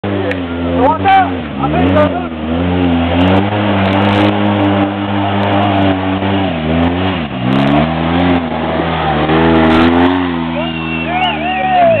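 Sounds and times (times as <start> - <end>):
off-road vehicle engine revving: 0.0 - 12.0
people shouting: 8.8 - 12.0.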